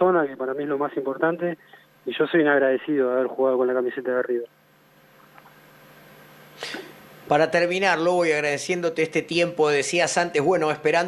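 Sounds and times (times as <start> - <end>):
faint steady hiss: 0.0 - 11.0
sharp breath near microphone: 6.6 - 7.0.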